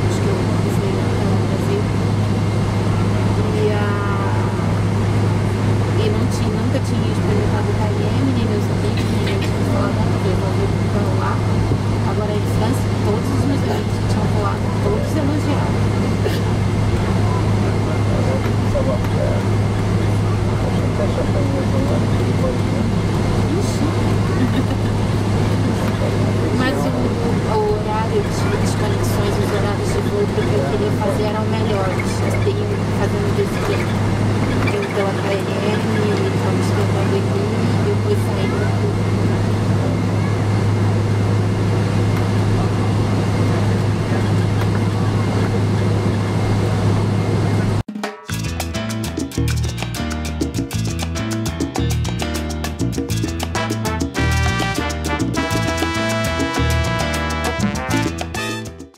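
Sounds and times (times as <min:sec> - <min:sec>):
airliner cabin hum: 0:00.0 - 0:47.9
indistinct passenger chatter: 0:00.0 - 0:47.9.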